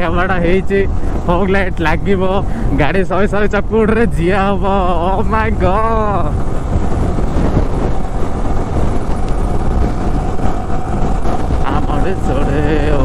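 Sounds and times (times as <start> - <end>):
wind on microphone: 0.0 - 13.0
motorcycle engine accelerating: 4.2 - 13.0.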